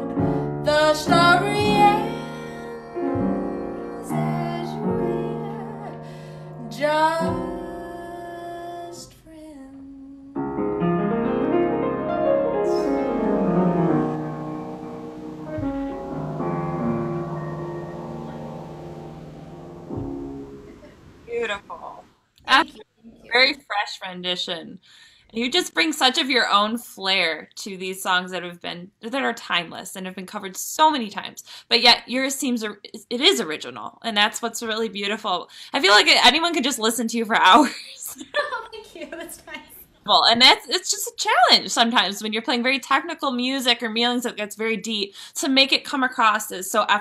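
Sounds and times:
jazz piano chords: 0.0s - 8.8s, 10.3s - 21.3s
woman singing jazz: 0.0s - 10.4s
jazz piano bass and drums: 12.6s - 21.2s
person talking: 20.8s - 24.6s, 37.4s - 41.8s.

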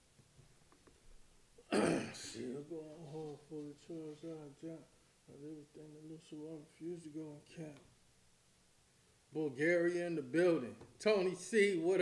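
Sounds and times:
man clearing throat: 1.6s - 2.6s
man's voice: 1.8s - 7.9s, 9.3s - 12.0s.

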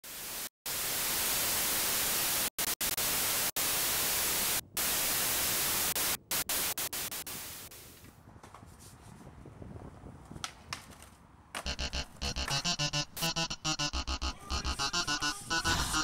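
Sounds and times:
television static hiss: 0.1s - 7.7s.

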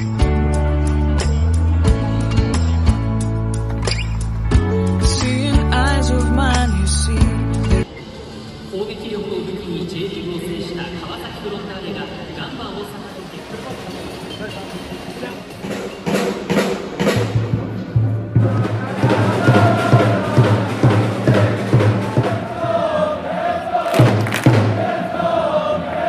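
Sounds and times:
crowd murmur: 16.8s - 26.0s
bass drum beating: 17.3s - 22.8s, 24.0s - 25.0s
crowd chanting in unison: 18.4s - 26.0s.

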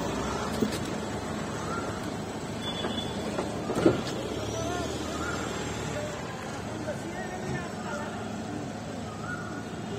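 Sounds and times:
traffic engine and road noise: 0.0s - 9.9s.

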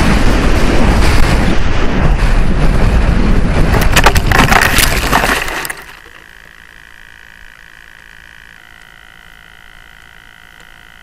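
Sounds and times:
faint high whine: 5.7s - 11.0s.

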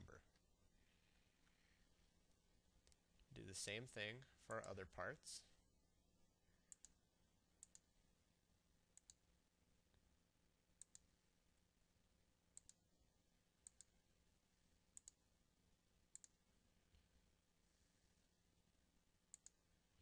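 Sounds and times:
faint steady hum: 0.0s - 20.0s
computer mouse clicks: 6.7s - 7.0s, 7.6s - 7.9s, 9.0s - 9.2s, 10.8s - 11.1s, 12.6s - 12.8s, 13.6s - 13.9s, 15.0s - 15.2s, 16.1s - 16.4s, 19.3s - 19.6s.

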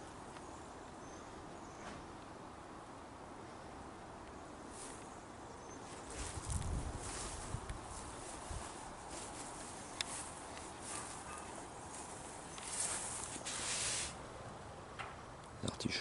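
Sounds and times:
leaves rustling: 4.7s - 5.1s, 5.8s - 14.5s
footsteps on grass: 5.9s - 14.2s.

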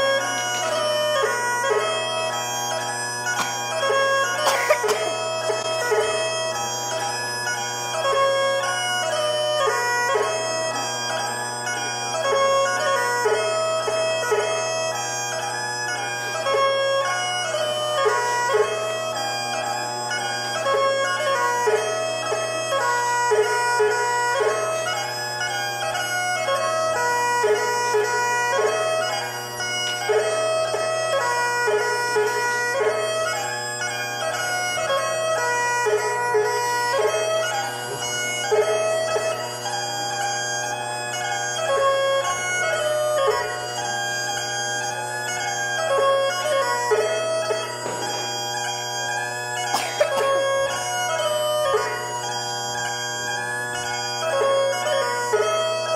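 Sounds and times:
bagpipe drones: 0.0s - 55.9s.

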